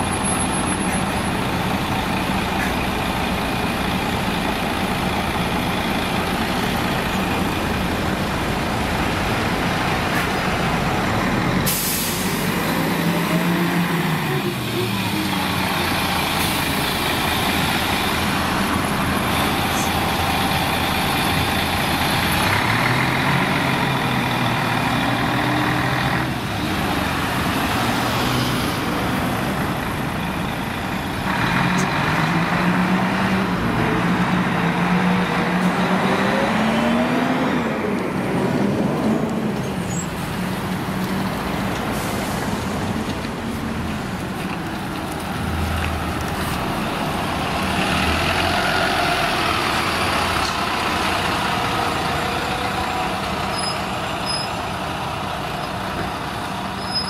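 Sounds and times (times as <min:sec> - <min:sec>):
bus diesel engine: 0:00.0 - 0:57.0
air brakes hissing: 0:11.6 - 0:12.6, 0:41.9 - 0:42.7.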